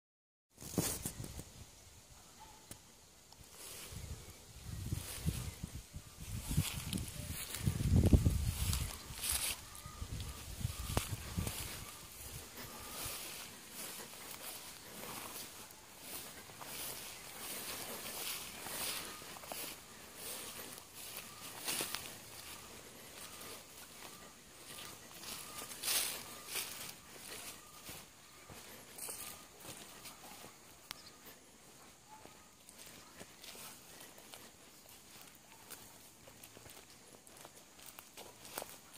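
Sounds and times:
footsteps through tall grass: 0.5s - 1.5s, 3.3s - 38.9s.

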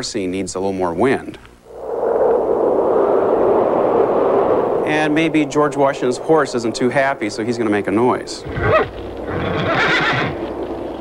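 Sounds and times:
steady wind: 0.0s - 11.0s.

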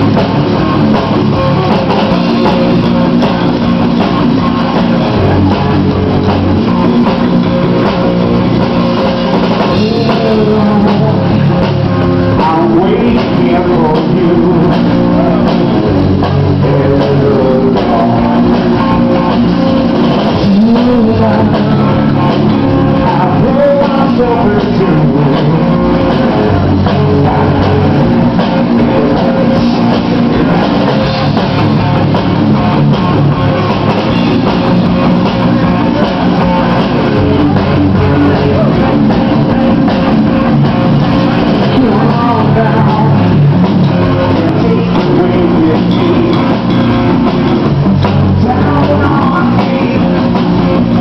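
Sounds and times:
bass guitar: 0.0s - 51.0s
drum kit: 0.0s - 51.0s
electric guitar: 0.0s - 51.0s
man singing through pa: 9.7s - 11.6s, 12.3s - 18.8s, 20.3s - 30.5s, 36.0s - 39.6s, 41.6s - 43.5s, 44.2s - 46.6s, 48.2s - 51.0s.

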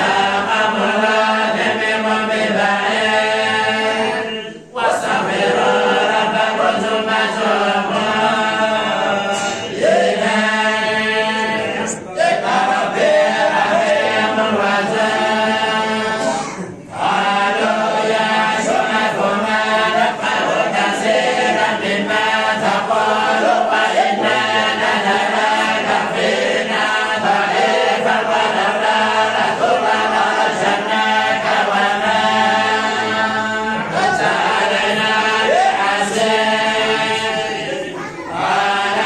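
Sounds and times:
men chanting in unison: 0.0s - 39.0s.

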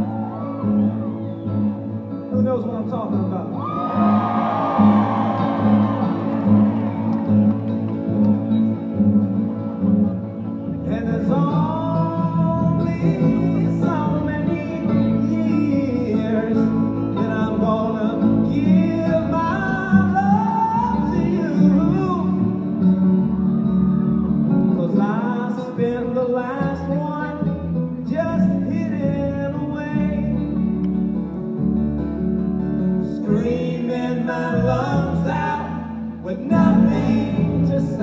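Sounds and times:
live folk-rock band playing: 0.0s - 38.0s
upright bass: 0.0s - 38.0s
person singing: 10.8s - 22.7s, 33.2s - 38.0s.

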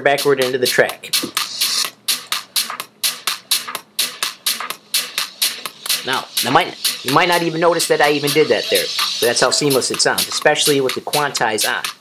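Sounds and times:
techno track with steady beat: 0.0s - 12.0s.

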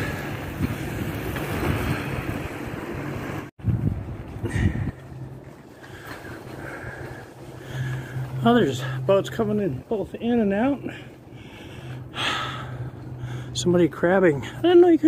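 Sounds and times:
wind buffeting microphone: 0.0s - 8.7s
skate wheels rolling on wet asphalt: 0.0s - 11.0s.

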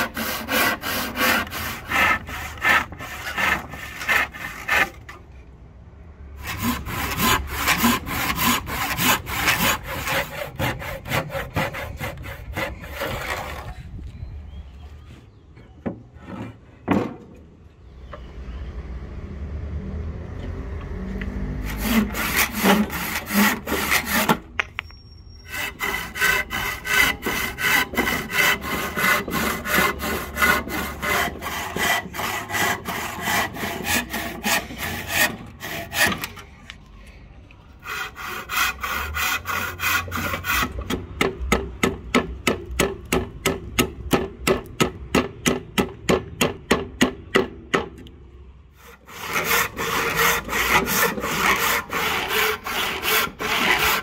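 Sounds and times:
hand saw cutting wood: 0.0s - 5.2s, 6.4s - 13.8s, 21.6s - 24.5s, 25.5s - 36.5s, 37.8s - 41.3s, 48.8s - 54.0s.

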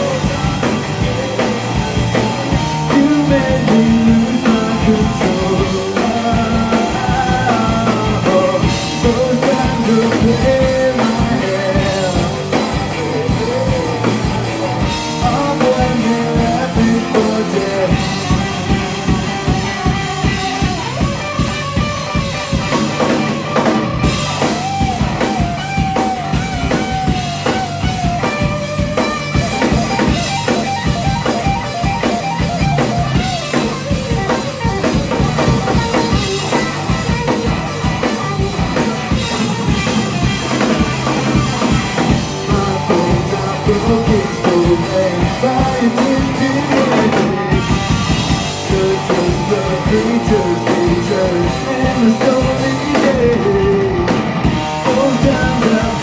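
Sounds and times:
person singing: 0.0s - 20.1s, 41.6s - 47.8s, 48.4s - 56.0s
bass guitar: 0.0s - 56.0s
drum kit: 0.0s - 56.0s
electric guitar: 0.0s - 56.0s.

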